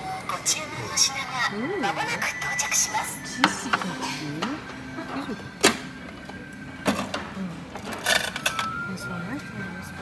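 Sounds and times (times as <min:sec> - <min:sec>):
busy restaurant background noise: 0:00.0 - 0:10.0.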